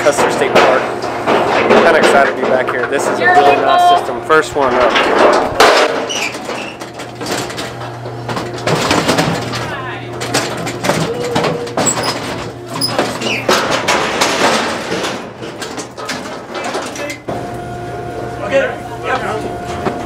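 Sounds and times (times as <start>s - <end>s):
steady low hum: 0.0s - 20.0s
indistinct voices talking: 1.7s - 5.6s, 9.5s - 12.0s.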